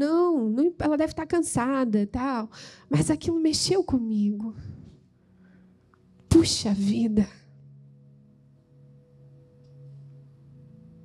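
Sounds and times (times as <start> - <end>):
soft sustained low chord: 2.8 - 11.0.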